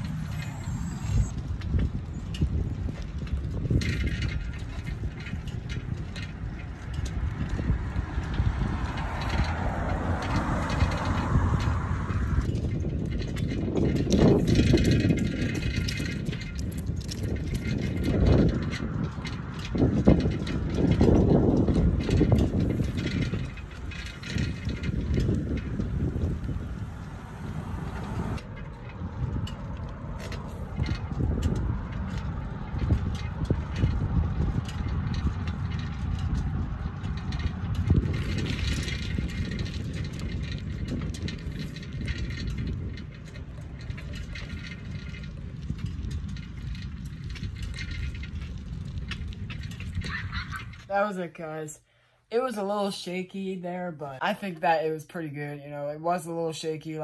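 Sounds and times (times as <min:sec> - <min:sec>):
wind buffeting microphone: 0:00.0 - 0:51.6.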